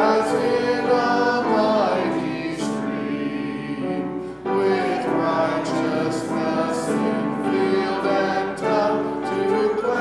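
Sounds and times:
congregation singing a hymn: 0.0 - 10.0.

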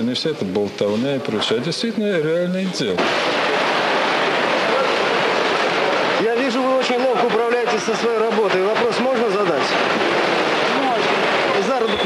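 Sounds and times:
workshop machinery din: 0.0 - 12.0.

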